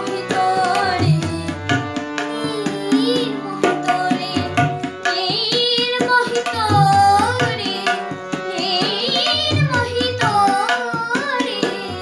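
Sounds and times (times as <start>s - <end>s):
boy singing: 0.0s - 12.0s
harmonium: 0.0s - 12.0s
tabla strokes: 0.0s - 12.0s.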